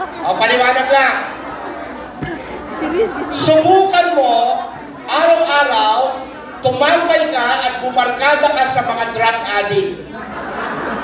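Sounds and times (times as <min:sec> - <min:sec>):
audience chatter in hall: 0:00.0 - 0:11.0.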